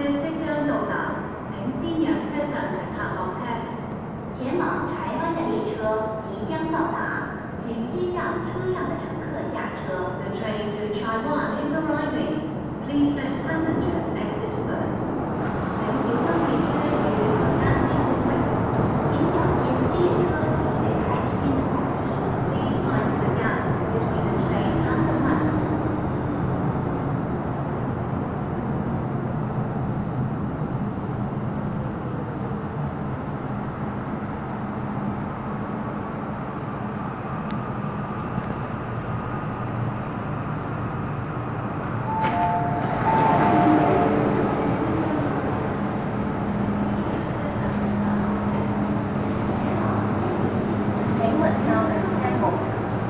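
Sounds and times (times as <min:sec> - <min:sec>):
low hum of stopped train: 0:00.0 - 0:53.0
train pulling into station: 0:00.0 - 0:53.0
two-note chime: 0:42.1 - 0:44.4.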